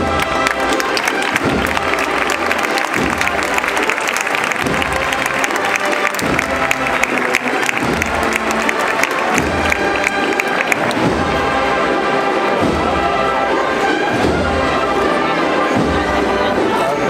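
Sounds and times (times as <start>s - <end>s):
crowd applauding: 0.0s - 11.4s
procession band playing: 0.0s - 17.0s.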